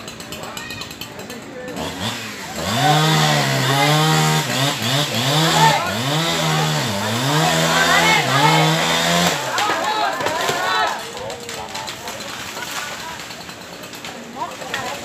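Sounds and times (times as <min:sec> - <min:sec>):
chainsaw revving and cutting wood: 0:00.0 - 0:15.0.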